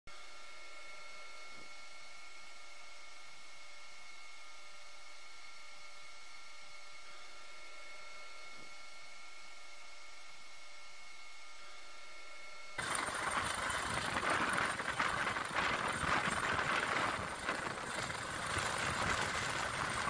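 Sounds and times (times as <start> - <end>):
faint high hum tones: 0.1 - 20.0
helicopter engine and rotors: 0.2 - 20.0
wind buffeting microphone: 12.8 - 20.0.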